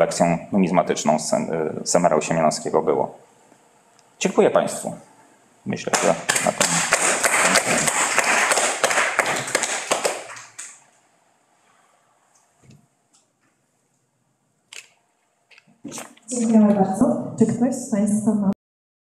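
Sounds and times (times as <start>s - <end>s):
audience applauding: 5.9s - 10.8s.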